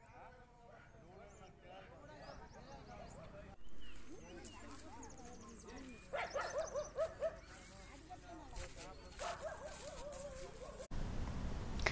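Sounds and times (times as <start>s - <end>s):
faint background voices: 0.0s - 10.9s.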